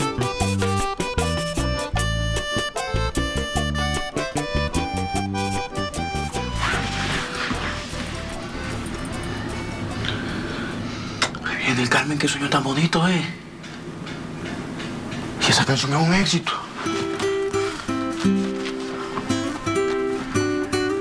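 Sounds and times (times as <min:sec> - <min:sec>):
latin dance music: 0:00.0 - 0:10.9.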